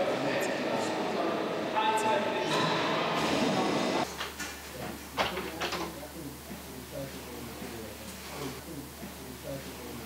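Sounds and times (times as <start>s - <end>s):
industrial machinery running: 2.7s - 4.1s.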